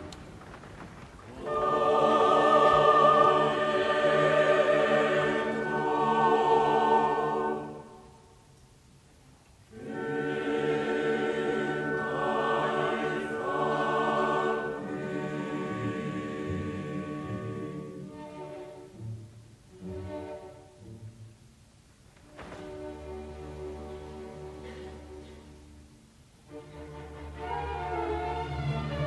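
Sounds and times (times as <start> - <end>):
opera chorus singing: 1.3 - 8.5, 9.7 - 19.0.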